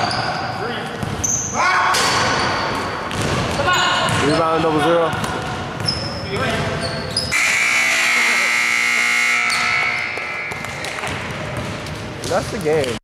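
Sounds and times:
scoreboard buzzer: 7.3 - 10.9
basketball bouncing on hardwood: 10.2 - 12.3.

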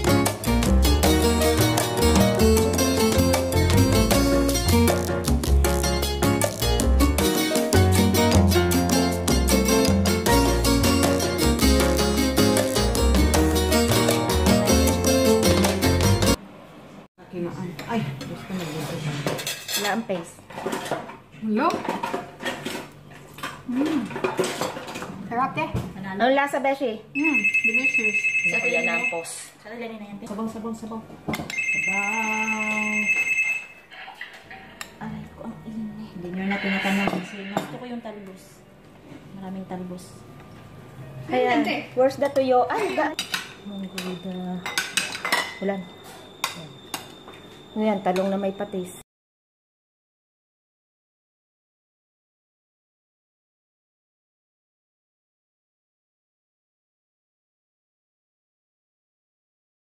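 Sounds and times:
spoons clinking on ceramic bowls: 43.1 - 47.2.

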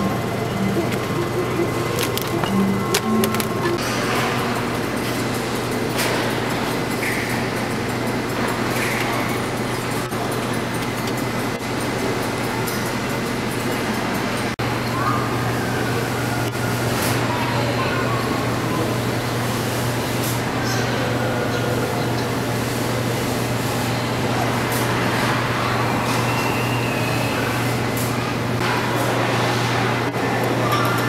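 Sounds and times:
steady low hum: 0.0 - 16.8
distant crowd voices: 0.0 - 31.0.

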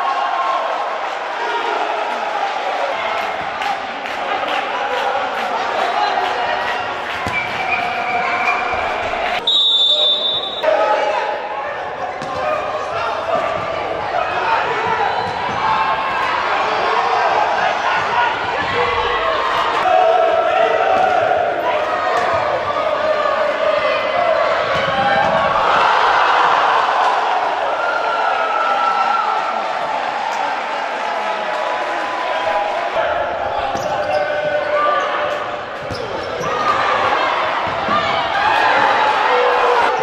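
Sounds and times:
players shouting: 0.0 - 40.0
spectators' voices echoing: 0.0 - 40.0.

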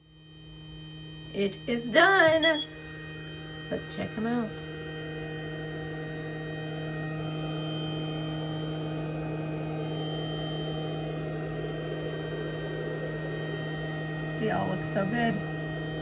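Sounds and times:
machine fans humming: 0.0 - 16.0.

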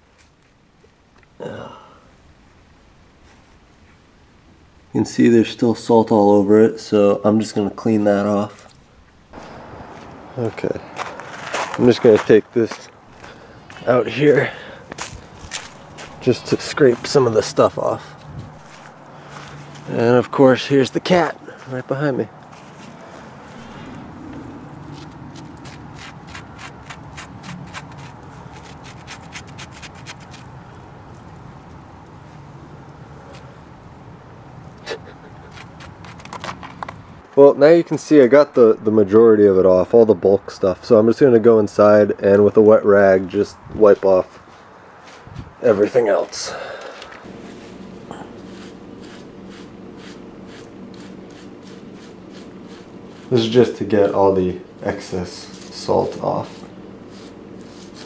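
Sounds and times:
steady low hum: 0.0 - 58.0
stick scraping pelt: 11.0 - 20.2, 22.4 - 31.3, 35.4 - 37.0, 47.2 - 58.0
paper towel rubbing hide: 24.7 - 30.5, 47.3 - 58.0.

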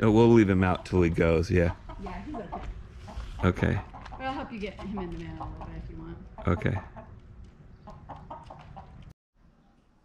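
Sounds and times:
rooster clucking: 1.6 - 7.2, 7.8 - 9.0.

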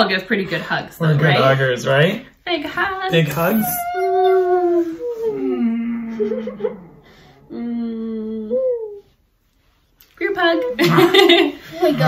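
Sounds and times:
people humming long vocal notes: 5.0 - 9.1.

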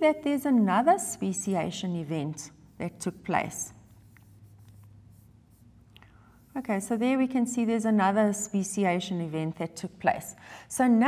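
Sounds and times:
stylus scratching on tablet: 1.2 - 7.9.

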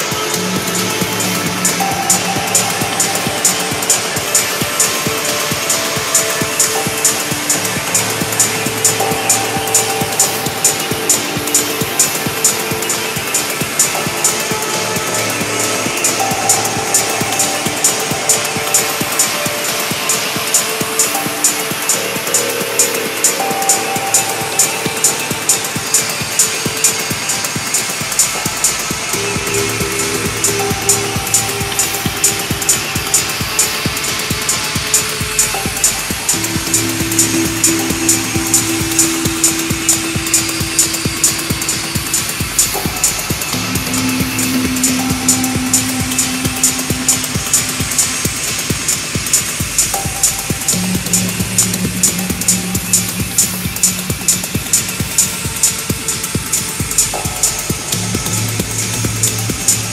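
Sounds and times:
held synth tones: 0.0 - 55.9
hi-hats: 0.0 - 59.9
techno kick drum: 0.1 - 59.9.

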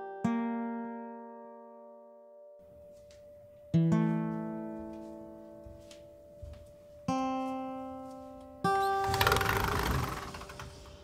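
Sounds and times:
sliding door rolling open: 9.0 - 11.0.

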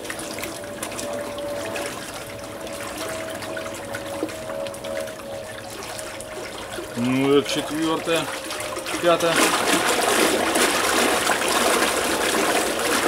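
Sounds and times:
faint electric motor whine: 0.0 - 12.8
propeller churning water: 0.0 - 13.0.

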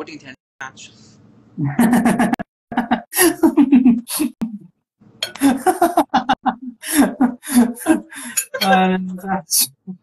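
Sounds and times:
person laughing hard: 1.8 - 4.0, 5.3 - 8.8.

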